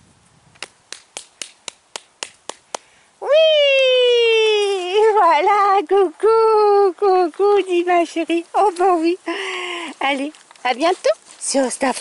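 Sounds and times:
woman's coaxing voice: 3.2s - 12.0s.

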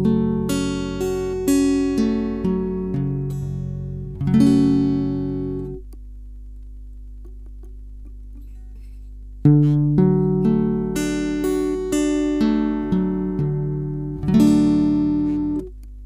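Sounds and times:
acoustic guitar fingerpicking: 0.0s - 6.0s, 7.2s - 15.9s
low steady hum: 0.0s - 16.0s.

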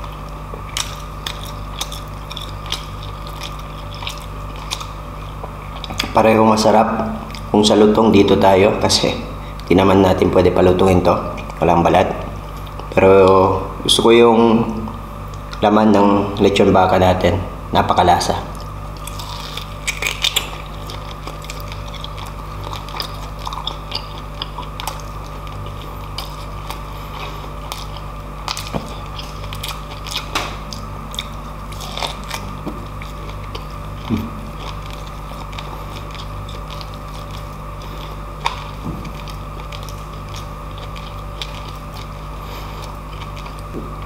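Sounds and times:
biting food: 0.0s - 6.3s, 18.5s - 44.0s
chewing with wet smacks: 0.0s - 7.8s, 18.4s - 44.0s
steady low hum: 0.0s - 44.0s.

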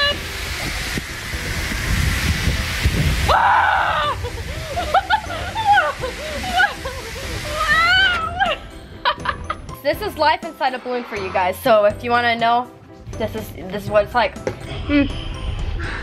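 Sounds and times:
rushing air inflating balloon: 0.0s - 9.3s
woman screaming: 3.2s - 4.4s, 5.3s - 6.8s, 7.4s - 8.7s
woman exclaiming excitedly: 3.3s - 4.3s, 5.5s - 6.8s, 7.5s - 8.6s.

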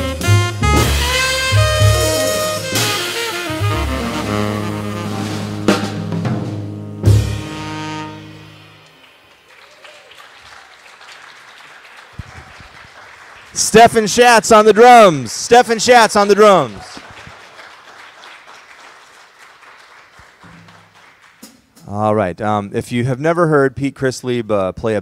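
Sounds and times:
saxophones: 0.0s - 6.2s, 7.0s - 9.2s
upright bass note: 0.0s - 8.8s
drum and cymbal hits: 0.0s - 9.0s.

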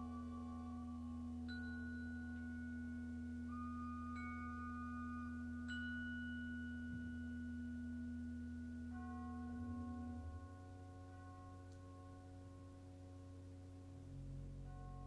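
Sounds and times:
ringing bell-like metal percussion: 0.0s - 15.0s.

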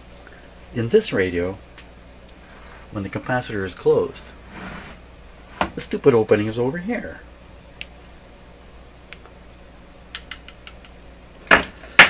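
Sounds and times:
small sharp mechanical clicks: 10.1s - 11.6s.

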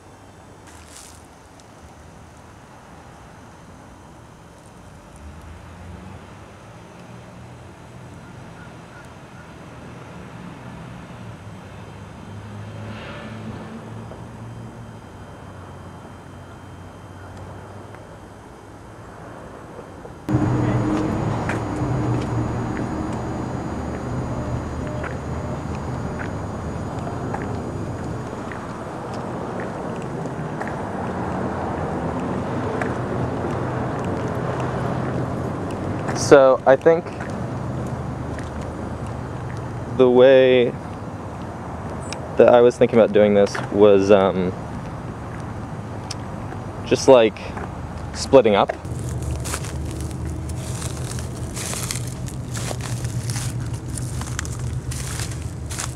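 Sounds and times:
close traffic rumble: 0.0s - 55.9s
distant road traffic hum: 0.0s - 55.9s.

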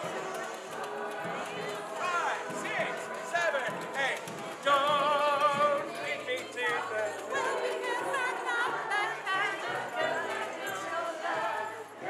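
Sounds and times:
street parade music: 0.0s - 12.0s.

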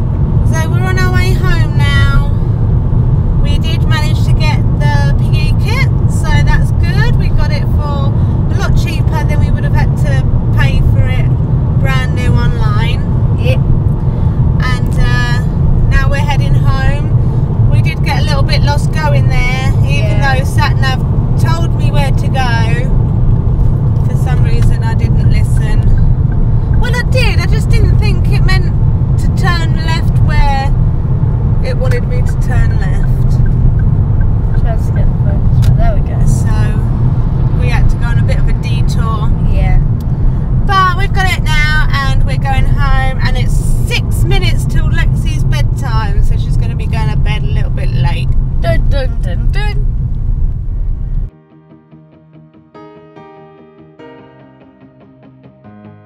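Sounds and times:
engine and tyre rumble: 0.0s - 51.4s.

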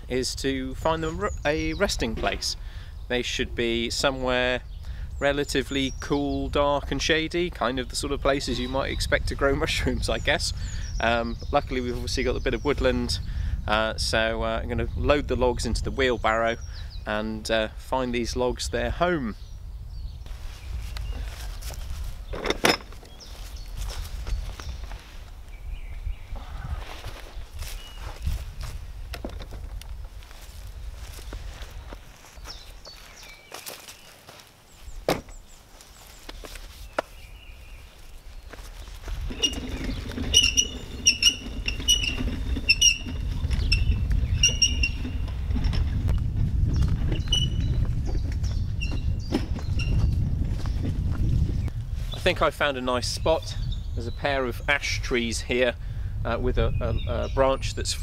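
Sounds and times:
footsteps on grass: 20.3s - 22.3s, 22.9s - 26.0s, 26.7s - 41.6s, 48.9s - 52.5s
wheelbarrow wheels rumbling: 38.4s - 53.4s.

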